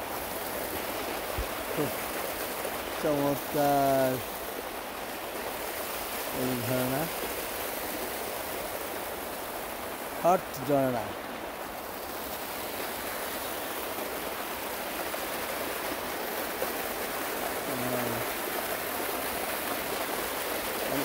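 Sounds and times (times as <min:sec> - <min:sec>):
water rushing over terraces: 0:00.0 - 0:21.0.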